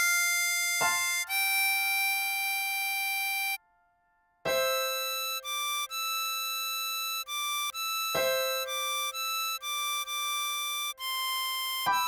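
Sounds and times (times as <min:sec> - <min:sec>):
harmonica holding a steady note: 0:00.0 - 0:03.6, 0:04.4 - 0:12.0.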